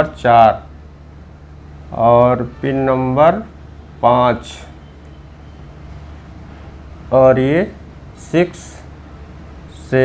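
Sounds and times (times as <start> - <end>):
low room hum with faint hiss: 0.0 - 10.0.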